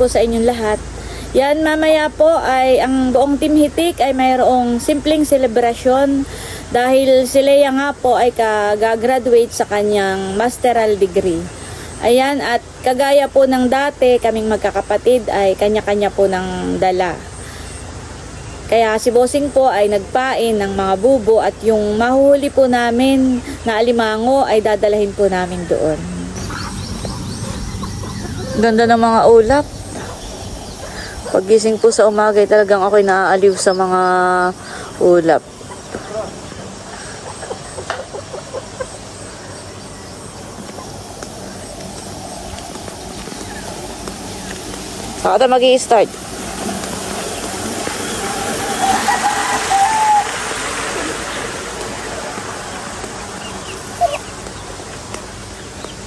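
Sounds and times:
steady rushing outdoor noise: 0.0 - 56.0
drawn-out bird call: 8.7 - 56.0
steady low rumble: 22.9 - 37.0
small bird chirping: 25.4 - 32.4, 33.2 - 45.8, 52.7 - 56.0.

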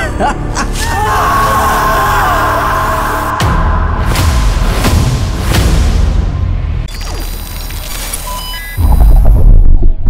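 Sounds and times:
dramatic trailer music: 0.0 - 10.0
wavering vocal cry: 0.5 - 3.8.

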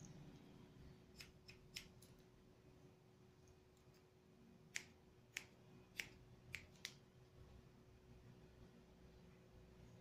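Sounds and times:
scissors snipping hair: 1.1 - 2.3, 4.7 - 7.0.

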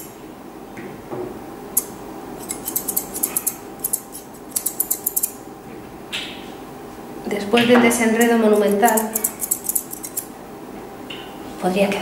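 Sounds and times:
scissors snipping fur: 1.8 - 5.3, 8.2 - 10.3.

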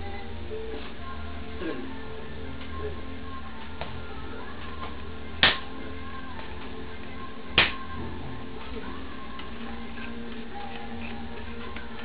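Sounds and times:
background music: 0.0 - 12.0
steady hum: 0.0 - 12.0.

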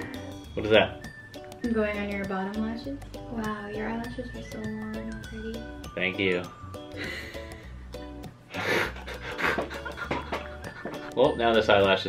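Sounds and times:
background music: 0.0 - 12.0
breathy laughter: 8.5 - 11.1.

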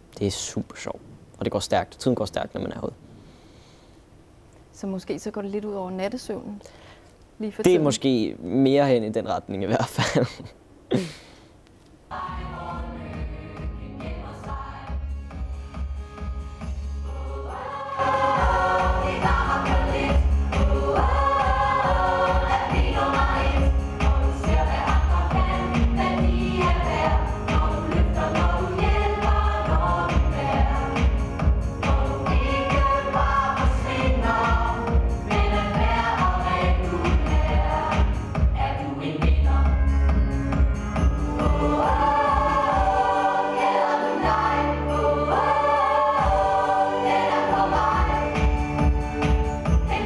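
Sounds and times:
chorus singing over backing music: 12.1 - 50.0.

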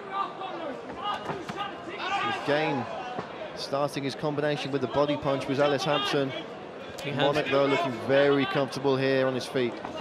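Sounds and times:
crowd shouting: 0.0 - 3.6.

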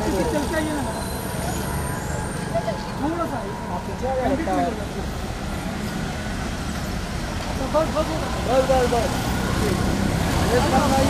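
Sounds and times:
traffic rumble: 0.0 - 11.0
people talking: 2.4 - 5.9.

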